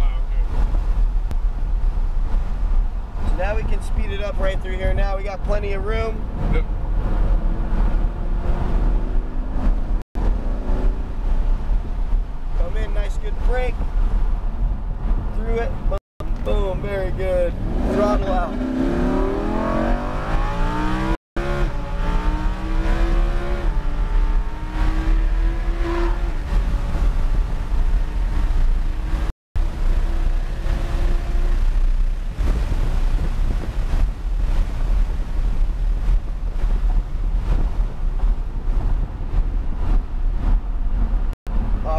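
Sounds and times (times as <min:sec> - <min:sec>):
road and wind rumble: 0:00.0 - 0:41.9
car engine accelerating: 0:16.6 - 0:41.3.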